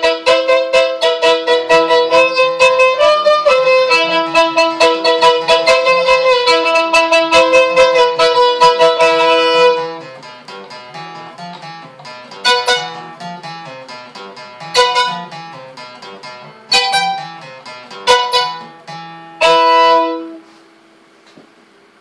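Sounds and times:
fiddle bowed notes: 0:00.0 - 0:20.6
acoustic guitar strumming: 0:00.0 - 0:20.8.

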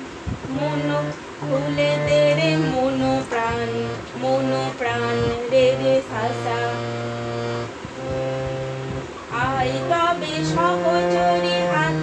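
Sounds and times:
harmonium holding a steady note: 0:00.0 - 0:12.0.

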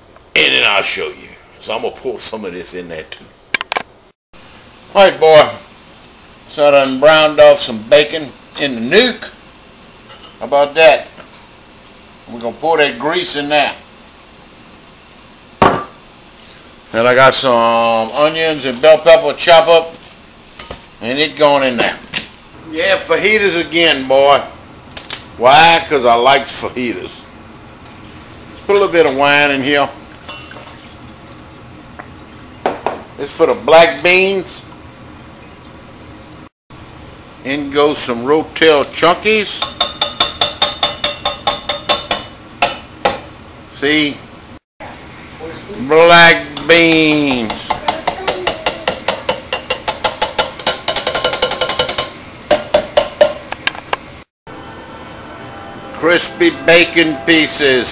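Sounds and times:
dish set down on counter: 0:15.6 - 0:16.0, 0:32.6 - 0:33.1
can knocking on saucepan rim: 0:47.4 - 0:53.4.

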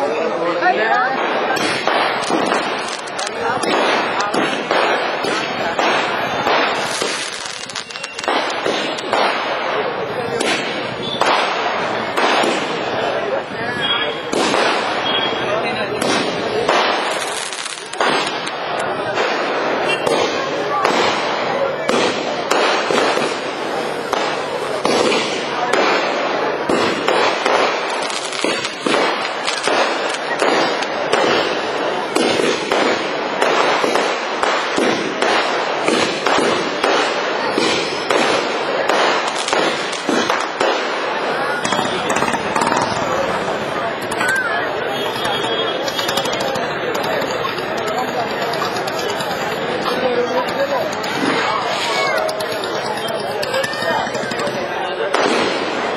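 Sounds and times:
fireworks bursting and crackling: 0:00.0 - 0:55.9.

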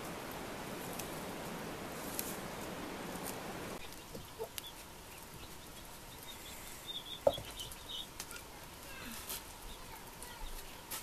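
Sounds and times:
chickens clucking: 0:00.0 - 0:10.0
rustling of vegetation: 0:00.0 - 0:11.0.

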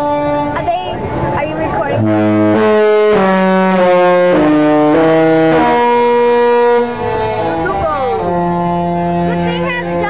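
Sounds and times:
ship horn playing a tune: 0:00.0 - 0:10.0
voices: 0:00.5 - 0:02.1, 0:06.6 - 0:10.0.

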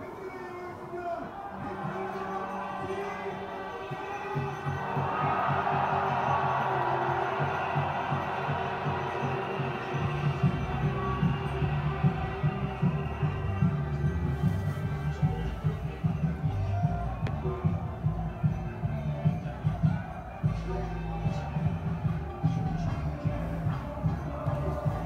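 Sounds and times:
distant amplified music: 0:01.3 - 0:25.0
low thumping beat: 0:01.6 - 0:25.0.

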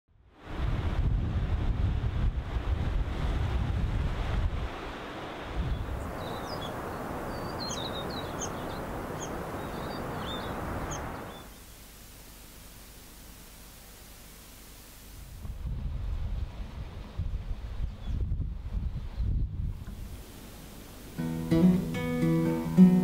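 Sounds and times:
wind buffeting microphone: 0:00.4 - 0:11.4, 0:15.2 - 0:20.2
small birds chirping: 0:05.6 - 0:11.7.

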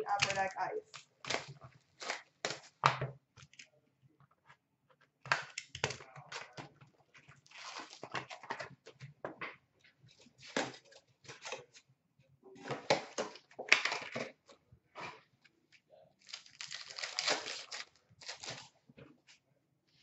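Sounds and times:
card pack wrappers tearing: 0:00.2 - 0:02.7, 0:07.5 - 0:08.2, 0:16.2 - 0:18.7.

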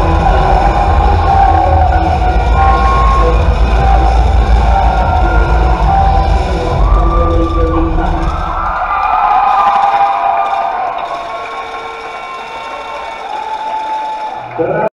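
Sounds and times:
dance music with heavy bass: 0:00.0 - 0:12.3
audience cheering and shouting: 0:00.0 - 0:14.9.

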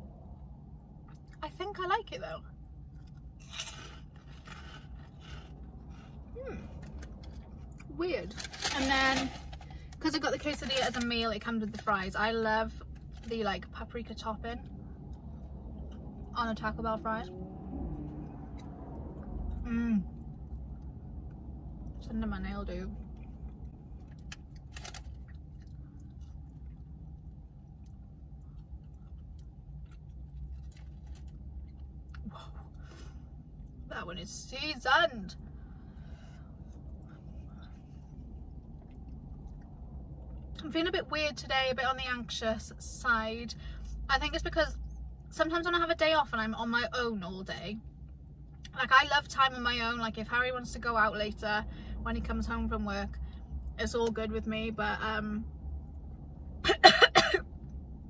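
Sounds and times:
low steady hum: 0:00.0 - 0:58.0
soft chewing crunches: 0:02.5 - 0:11.1, 0:22.9 - 0:33.9, 0:35.4 - 0:40.6.

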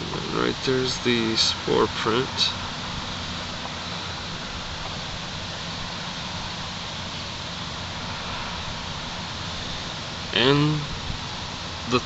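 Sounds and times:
background hiss: 0:00.0 - 0:12.0
low even hum: 0:00.0 - 0:12.0.

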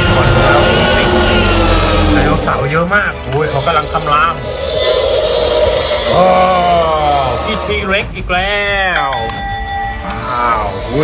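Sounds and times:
toy dinosaur electronic growl: 0:04.0 - 0:07.8.

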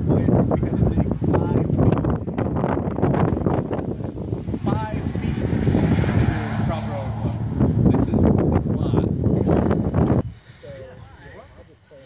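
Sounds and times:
wind buffeting microphone: 0:00.0 - 0:11.4.

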